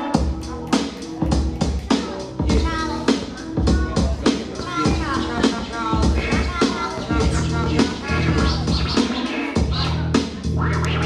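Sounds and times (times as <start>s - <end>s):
hip hop beat with deep bass: 0.0s - 11.0s
vinyl record scratching: 4.4s - 11.0s.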